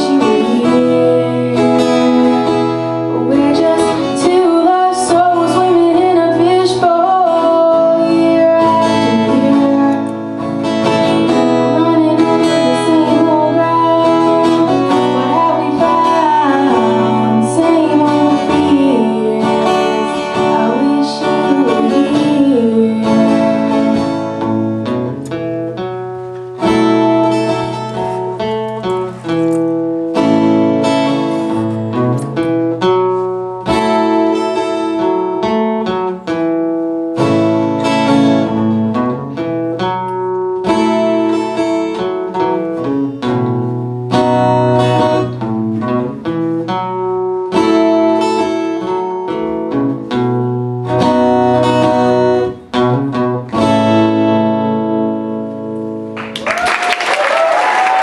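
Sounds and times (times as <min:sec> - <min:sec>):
acoustic guitar strumming chords: 0:00.0 - 0:56.3.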